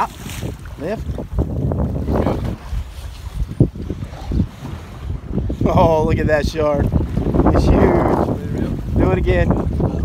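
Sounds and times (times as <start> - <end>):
sea water moving alongside boat: 0.0 - 10.0
wind buffeting microphone: 0.0 - 10.0.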